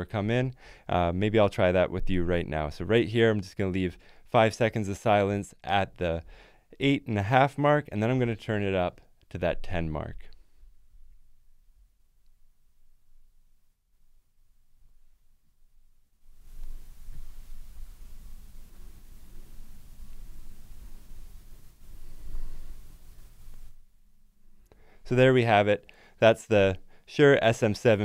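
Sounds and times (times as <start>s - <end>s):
steady microphone hiss: 0.0s - 28.0s.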